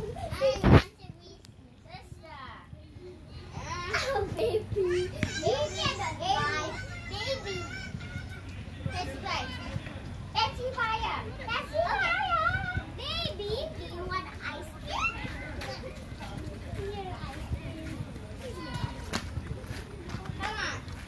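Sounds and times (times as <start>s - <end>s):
children shouting: 3.5s - 9.8s.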